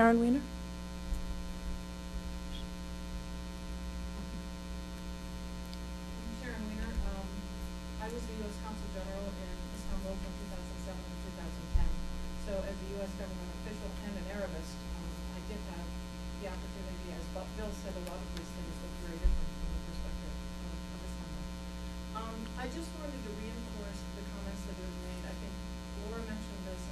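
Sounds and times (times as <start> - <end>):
electrical mains hum: 0.0 - 26.9.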